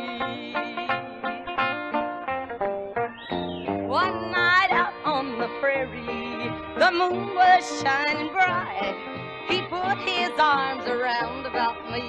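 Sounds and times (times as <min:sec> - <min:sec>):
country band playing: 0:00.0 - 0:12.0.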